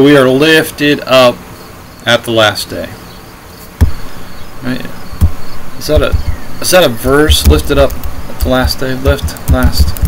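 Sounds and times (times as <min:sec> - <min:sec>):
sharp click with low thump: 0:03.8 - 0:04.0, 0:05.2 - 0:06.4
man's voice: 0:05.8 - 0:10.0.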